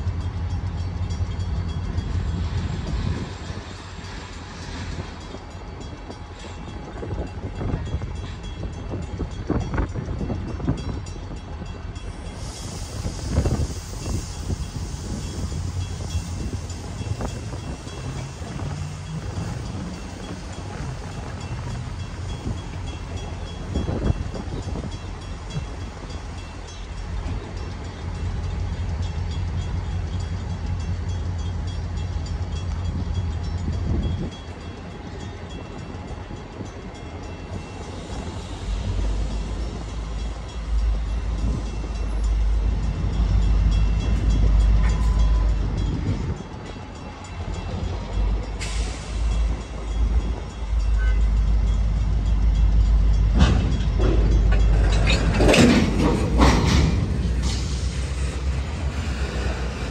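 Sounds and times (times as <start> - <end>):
freight train rumble: 0.0 - 59.9.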